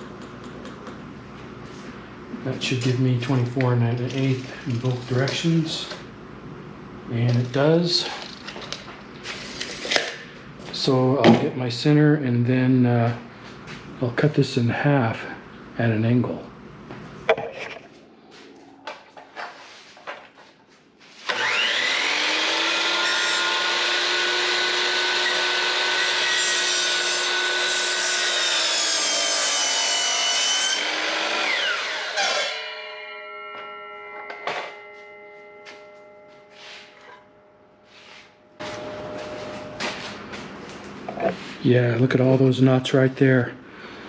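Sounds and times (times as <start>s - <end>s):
saw blade spinning down: 21.2s - 26.4s
miter saw cutting wood: 21.2s - 33.2s.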